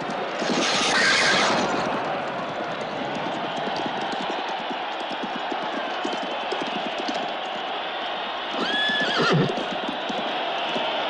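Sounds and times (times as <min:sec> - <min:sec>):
horse hooves clattering: 0:00.0 - 0:11.0
horse whinnying: 0:08.5 - 0:09.8.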